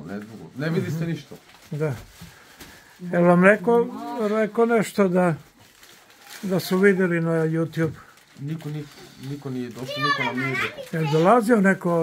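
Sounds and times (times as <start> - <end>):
people speaking: 6.4 - 12.0
child's high voice: 9.8 - 11.5.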